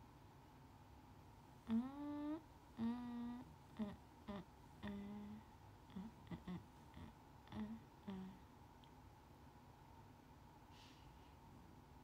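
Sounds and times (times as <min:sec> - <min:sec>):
woman humming: 0:01.6 - 0:08.5.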